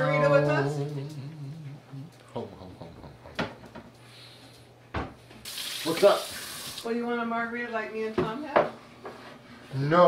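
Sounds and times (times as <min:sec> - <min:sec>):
water running into metal sink: 0:05.4 - 0:06.9.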